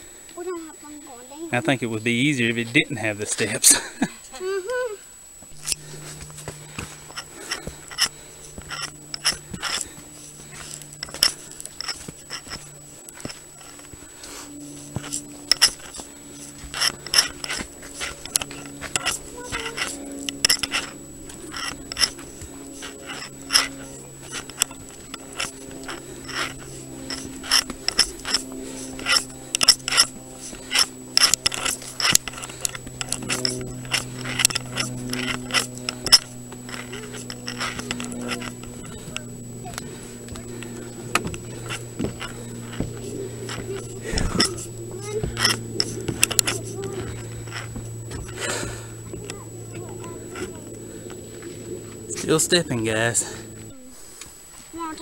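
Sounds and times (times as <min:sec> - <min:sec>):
low steady hum: 0:00.0 - 0:55.0
footsteps on stone and wooden steps: 0:05.4 - 0:54.8.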